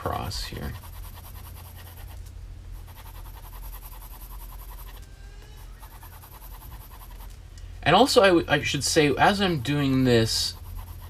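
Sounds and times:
pencil shading on paper: 0.0s - 2.2s, 2.8s - 5.0s, 5.6s - 7.3s, 9.4s - 11.0s
steady low hum: 0.0s - 11.0s.

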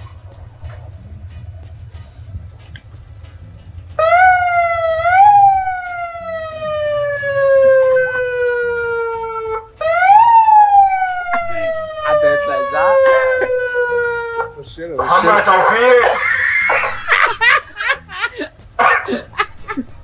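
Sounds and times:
siren wailing: 4.0s - 17.6s.

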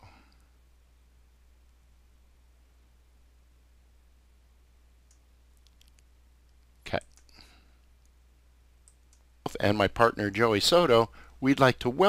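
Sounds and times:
faint low hum: 0.0s - 12.0s
computer mouse click: 5.1s - 7.3s, 8.8s - 9.3s.

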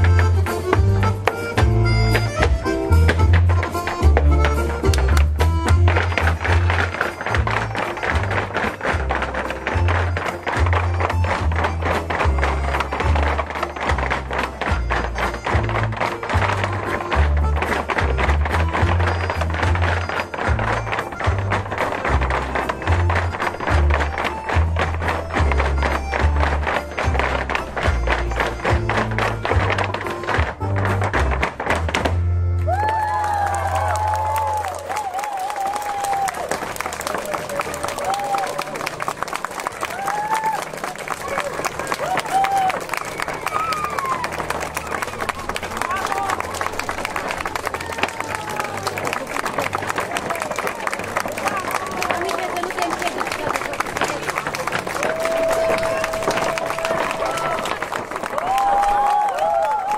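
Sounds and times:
jig music with bass beat: 0.0s - 9.9s
jig music: 0.0s - 32.7s
hard shoes tapping on stage: 0.0s - 59.9s.

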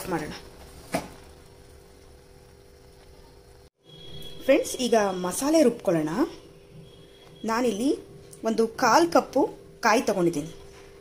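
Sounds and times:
water boiling in a pan: 0.0s - 11.0s.

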